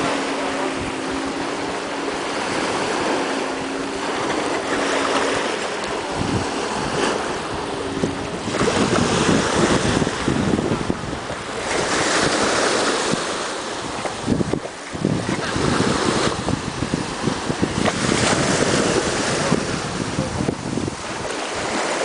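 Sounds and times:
small waves washing on shore: 0.0 - 22.0
wind buffeting microphone: 0.0 - 22.0.

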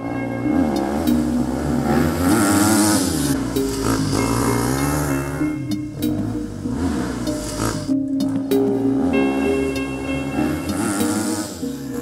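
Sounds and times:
background music: 0.0 - 12.0
dirt bike engine revving: 0.0 - 12.0.

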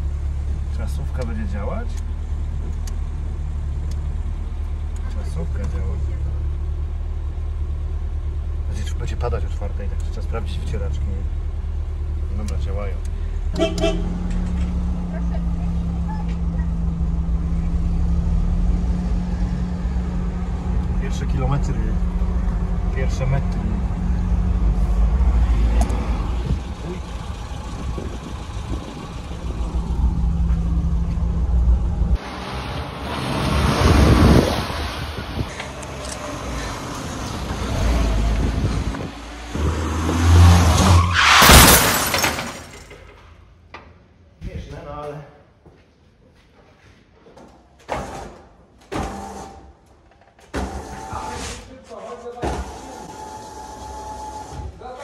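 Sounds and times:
car engine running: 0.0 - 33.3, 35.1 - 39.6.

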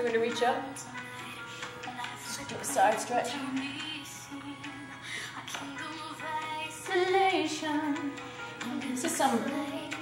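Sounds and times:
girl singing a chant: 8.7 - 10.0.

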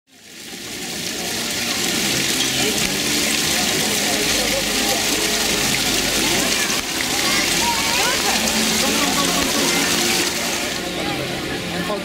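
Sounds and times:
running water rushing: 0.1 - 12.0
faint voices of people: 0.2 - 12.0.

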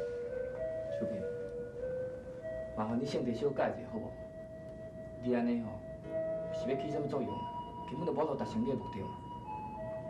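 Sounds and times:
slow melody of held notes: 0.0 - 10.0.

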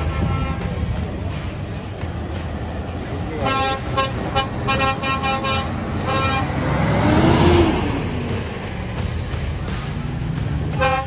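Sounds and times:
truck air horn toots: 0.0 - 0.9, 3.4 - 6.8, 10.7 - 11.0
lorry engine rumbling by: 0.0 - 11.0.

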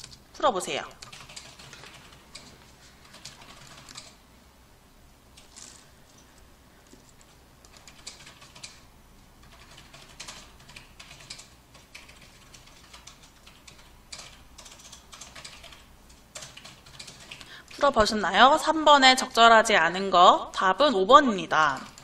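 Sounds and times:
computer keyboard typing: 0.0 - 0.3, 0.9 - 4.2, 7.2 - 8.8, 9.4 - 17.8, 21.6 - 22.0.

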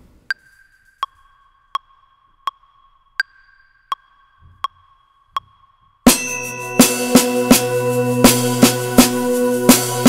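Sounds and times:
metronome clicking: 0.3 - 7.8
steady low tone: 1.0 - 10.0
drum kit strokes: 6.1 - 10.0.

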